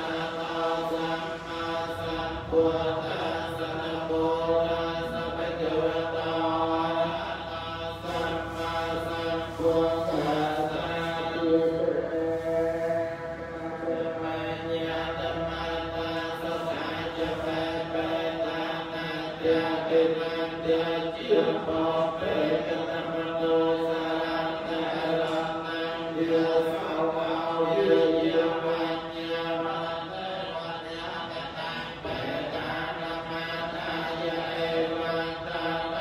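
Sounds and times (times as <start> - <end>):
monks chanting in unison: 0.0 - 36.0
person chanting into a microphone: 0.0 - 36.0.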